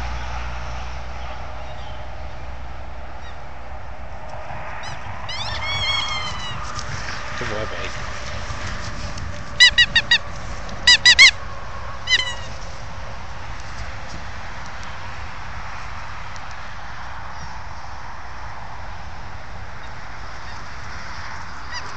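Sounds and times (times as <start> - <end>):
squeaky toy squeaks: 9.6 - 10.2, 10.8 - 11.4, 12.1 - 12.6.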